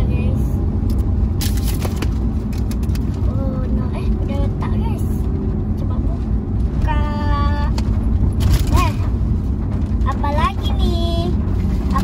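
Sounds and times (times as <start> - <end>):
car interior rumble: 0.0 - 12.0
young girl speaking: 3.2 - 6.2, 6.8 - 7.8, 8.6 - 9.2, 10.0 - 12.0.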